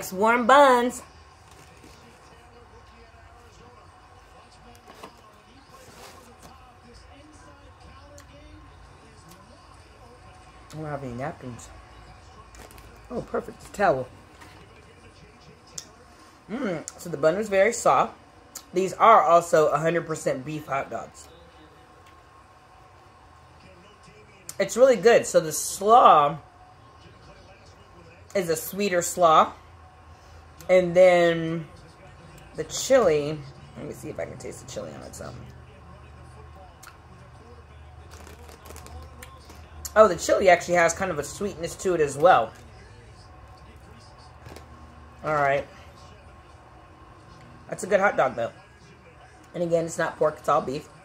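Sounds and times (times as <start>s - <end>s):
person speaking: 0.0s - 1.0s
low steady hum: 0.0s - 51.0s.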